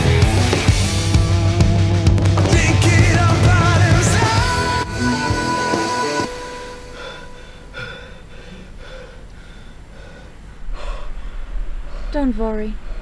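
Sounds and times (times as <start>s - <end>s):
loud rock music: 0.0s - 6.9s
quick panting breaths: 6.9s - 12.1s.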